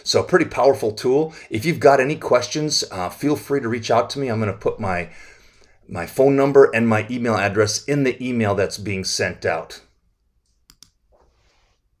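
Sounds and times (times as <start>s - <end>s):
computer mouse clicks: 10.4s - 11.3s.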